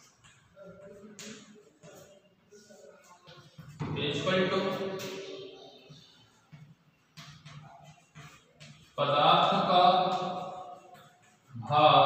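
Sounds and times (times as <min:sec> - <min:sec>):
chalk scratching on blackboard: 0:07.4 - 0:11.6.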